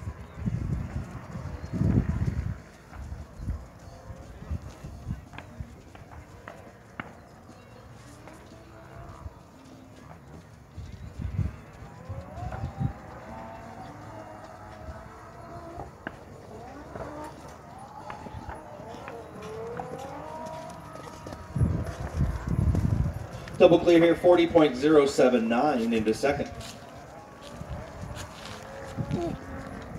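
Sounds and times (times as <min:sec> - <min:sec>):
horse hoofbeats on dirt: 0:00.0 - 0:29.9
faint voice: 0:29.0 - 0:29.5.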